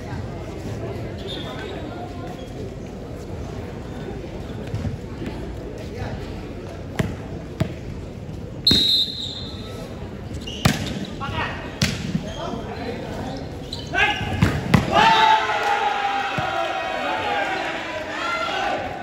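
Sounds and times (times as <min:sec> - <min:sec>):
volleyball bouncing on court: 0:06.9 - 0:07.8, 0:14.3 - 0:15.0, 0:16.3 - 0:16.6
referee whistle blast: 0:08.7 - 0:09.8
crowd shouting and cheering: 0:14.0 - 0:19.0.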